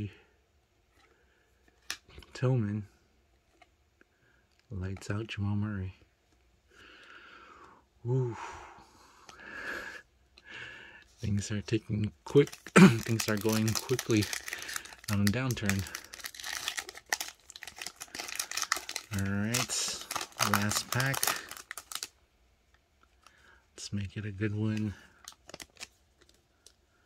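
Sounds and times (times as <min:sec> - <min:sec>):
person breathing: 0:06.7 - 0:11.2, 0:14.3 - 0:15.1, 0:23.2 - 0:23.8
crackles of foil wrapper: 0:12.2 - 0:22.1, 0:24.5 - 0:26.8
foil wrapper crinkling: 0:12.3 - 0:22.1, 0:24.6 - 0:26.8.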